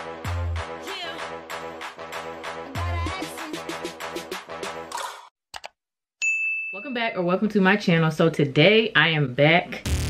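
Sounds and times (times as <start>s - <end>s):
high bell ding: 6.2s - 7.2s.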